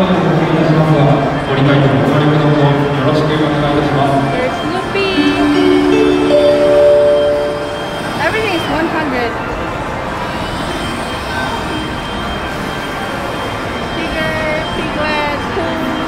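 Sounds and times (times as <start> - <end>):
electronic arcade machine music: 5.2 - 8.3.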